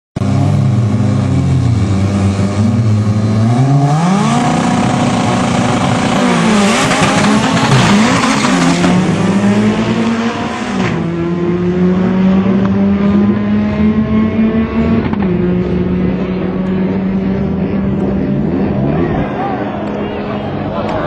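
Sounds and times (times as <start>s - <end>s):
car engines revving: 0.2s - 21.0s
cars accelerating at full throttle: 0.2s - 21.0s.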